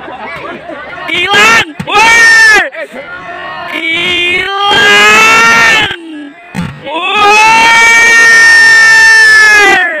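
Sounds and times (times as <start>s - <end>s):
high-pitched scream: 6.9s - 10.0s.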